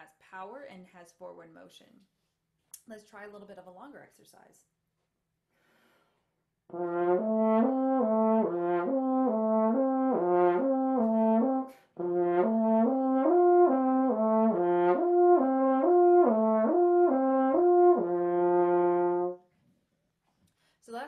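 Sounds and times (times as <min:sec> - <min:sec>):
french horn slurring arpeggio: 0:06.7 - 0:19.4.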